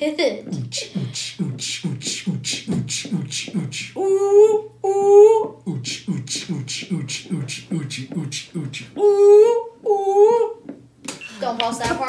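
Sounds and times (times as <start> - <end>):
person crying out high-pitched: 4.0 - 5.5, 9.0 - 10.6.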